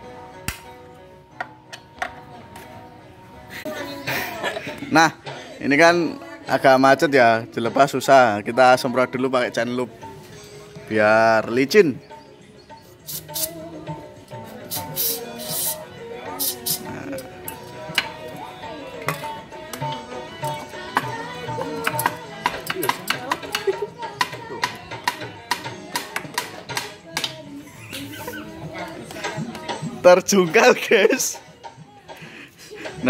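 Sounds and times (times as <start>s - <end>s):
background music: 0.0s - 33.0s
aerosol can spraying: 13.0s - 13.6s, 14.7s - 15.8s, 16.4s - 16.9s.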